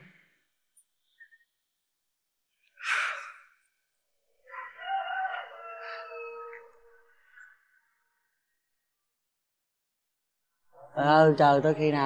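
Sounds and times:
rooster crowing: 4.4s - 7.1s.

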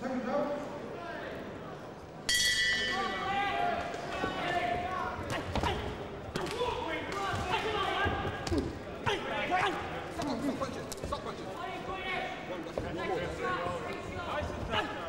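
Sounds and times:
boxing ring bell: 2.3s - 3.3s
people shouting: 3.1s - 10.0s.

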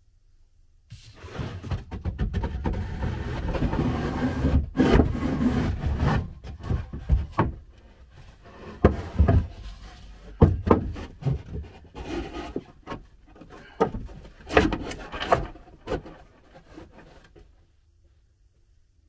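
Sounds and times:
wood scraping on wood: 1.0s - 17.5s
sharp knocks on wood: 10.4s - 11.0s.

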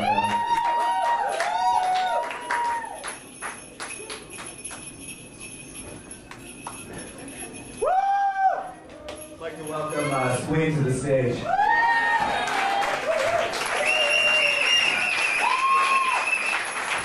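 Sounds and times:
light jingling: 3.2s - 7.8s, 9.1s - 10.7s.

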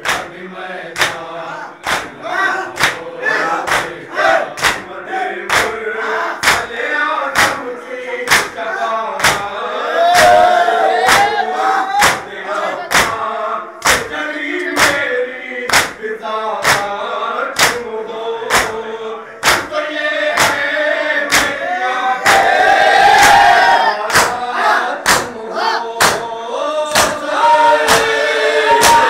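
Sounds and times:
collective cry of voices: 0.0s - 29.0s
men chanting in unison: 0.0s - 29.0s
open-handed chest-beating: 24.1s - 25.4s, 26.9s - 27.2s.

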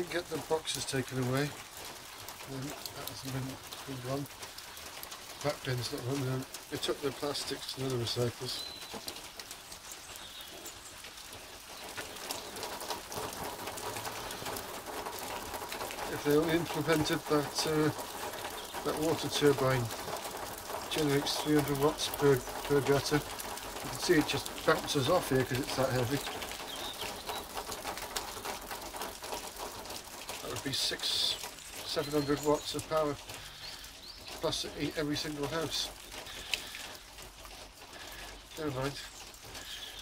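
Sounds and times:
steady rain falling: 0.0s - 40.0s.

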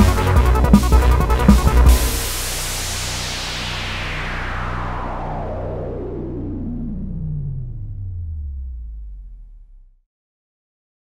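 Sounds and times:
low synthesizer drone: 0.0s - 10.0s
synthesizer filter sweep: 0.0s - 10.0s.

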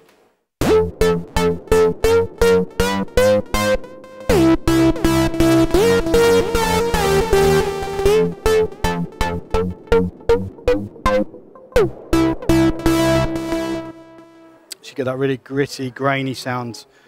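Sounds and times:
distorted synthesizer notes: 0.6s - 14.7s.

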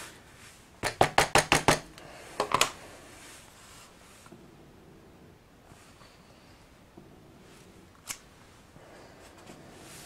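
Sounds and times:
rubber stamp tapping ink pad: 0.8s - 2.7s.

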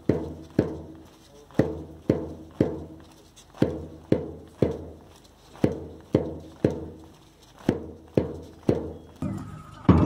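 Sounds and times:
large drum beating march time: 0.0s - 1.0s, 1.6s - 3.0s, 3.6s - 5.0s, 5.6s - 7.0s, 7.7s - 10.0s.

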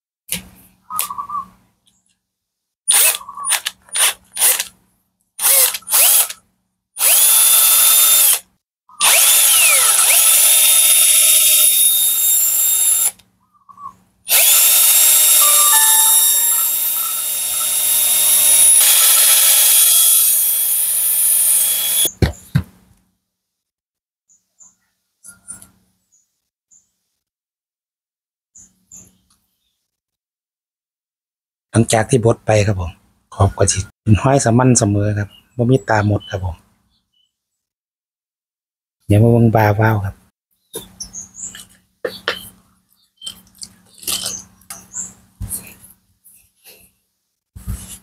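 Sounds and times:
cordless drill spinning: 2.9s - 4.8s, 5.4s - 6.4s, 7.0s - 13.2s, 14.3s - 22.1s.

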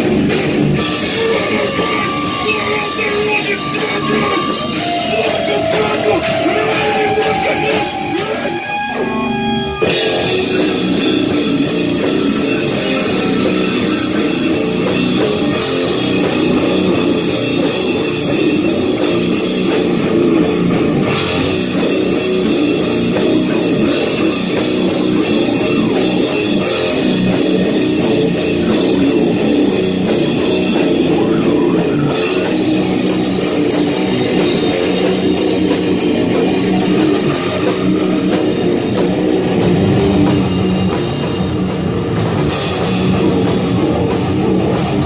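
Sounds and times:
bass guitar: 0.0s - 45.0s
distorted electric guitar: 0.0s - 45.0s
drum kit: 0.0s - 45.0s.

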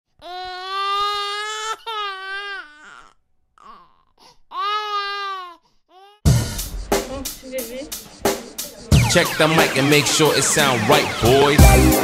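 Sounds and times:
baby crying: 0.2s - 6.3s.

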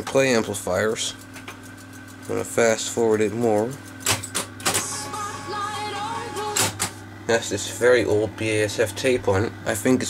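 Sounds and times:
music with wavering pitch: 4.8s - 6.8s.

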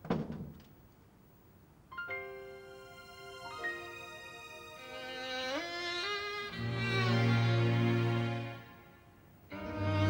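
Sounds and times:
wooden door shutting: 0.0s - 0.6s
slow sad violin music: 2.2s - 10.0s.

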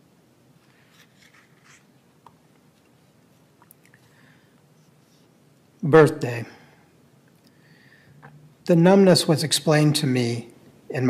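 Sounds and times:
book page turning: 0.6s - 3.0s.

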